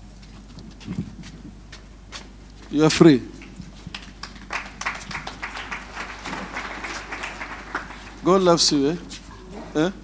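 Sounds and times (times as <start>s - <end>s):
steady low hum: 0.0s - 10.0s
crowded hall room noise: 2.7s - 10.0s.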